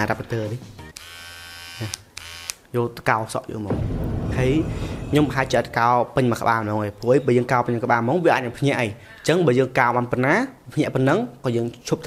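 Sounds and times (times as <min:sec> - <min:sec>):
hair clipper buzzing: 0:01.0 - 0:02.6.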